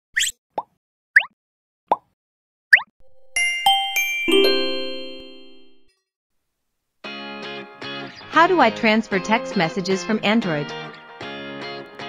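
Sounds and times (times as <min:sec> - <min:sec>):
rising pop sound effects: 0:02.7 - 0:05.9.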